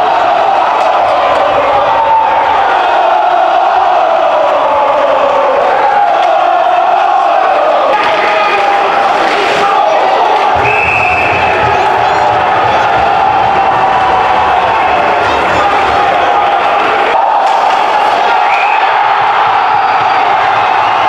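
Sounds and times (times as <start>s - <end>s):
crowd cheering and shouting: 0.0s - 21.0s.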